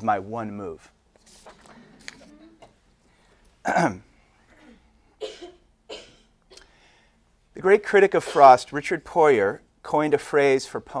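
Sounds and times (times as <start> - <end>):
man coughing: 3.6 - 6.7.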